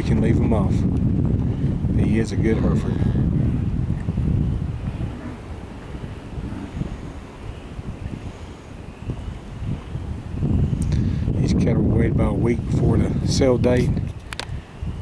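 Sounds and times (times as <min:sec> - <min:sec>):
wind buffeting microphone: 0:00.0 - 0:15.0.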